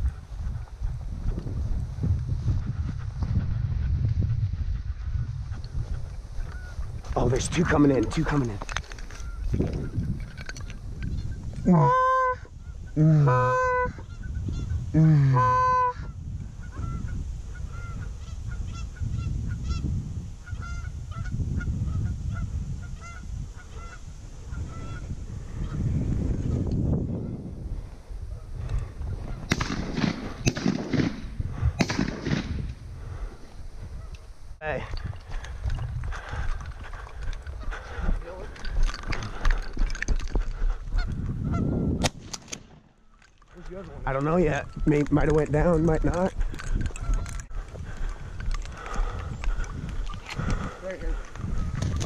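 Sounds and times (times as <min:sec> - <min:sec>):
goose honks: 0:11.7 - 0:12.5, 0:13.1 - 0:14.6, 0:15.2 - 0:16.0.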